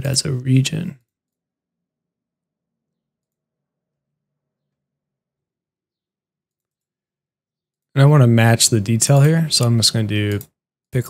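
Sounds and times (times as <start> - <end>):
man speaking: 0.0 - 1.0, 8.0 - 11.0.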